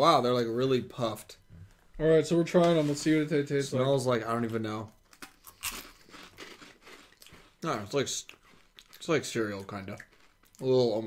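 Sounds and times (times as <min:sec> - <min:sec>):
crunchy candy being chewed: 0:05.0 - 0:11.0.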